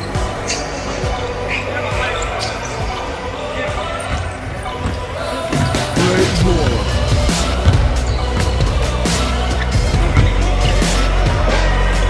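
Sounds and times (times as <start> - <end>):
background music: 0.0 - 12.0
voices: 0.0 - 12.0
basketball bouncing on wooden floor: 6.3 - 9.0, 9.8 - 10.8.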